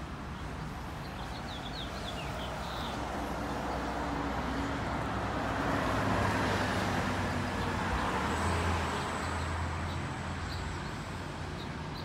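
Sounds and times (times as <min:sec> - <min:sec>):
vehicle passing close by: 0:03.0 - 0:11.5.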